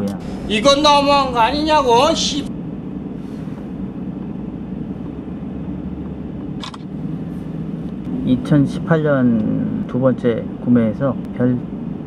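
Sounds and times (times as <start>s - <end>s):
car engine rumble: 0.0s - 12.0s
road noise: 0.0s - 12.0s.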